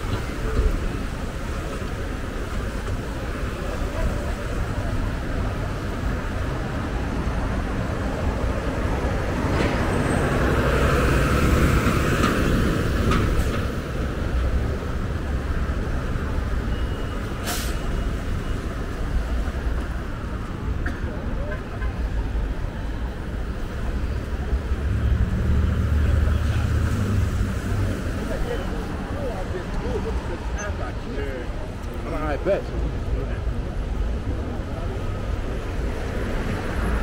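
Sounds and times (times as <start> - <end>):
vehicle engines running: 0.0 - 37.0
tyres hissing on wet road: 16.8 - 20.7, 23.4 - 30.6
brief sharp hiss: 17.4 - 17.9.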